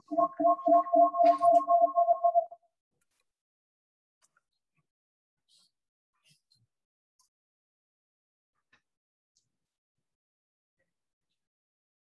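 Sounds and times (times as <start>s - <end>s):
electronic pulsing tones: 0.0s - 2.6s.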